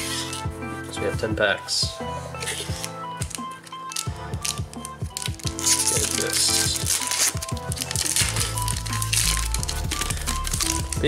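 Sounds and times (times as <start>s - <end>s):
background music: 0.0s - 11.0s
foil wrapper crinkling: 2.4s - 11.0s.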